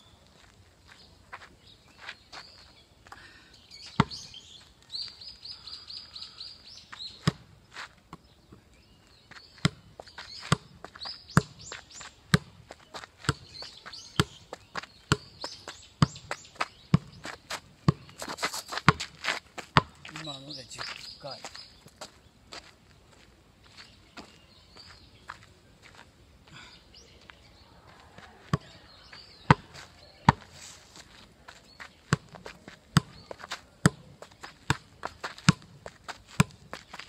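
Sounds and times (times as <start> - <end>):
birds chirping: 0.0 - 37.0
football being kicked: 15.1 - 15.4, 18.8 - 19.1, 28.5 - 28.8, 29.5 - 30.5, 32.1 - 35.8, 36.4 - 36.6.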